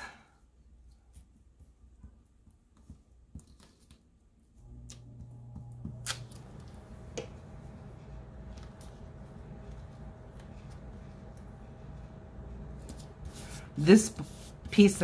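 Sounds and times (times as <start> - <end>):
steady low hum: 4.6 - 15.0
glue stick rubbing paper: 10.4 - 15.0.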